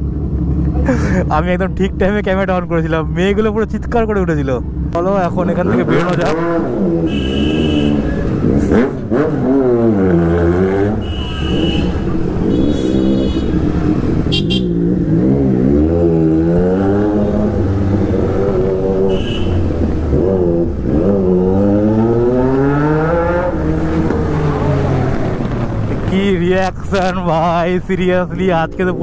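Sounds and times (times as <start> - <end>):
motorcycle engine revving: 1.8 - 26.2.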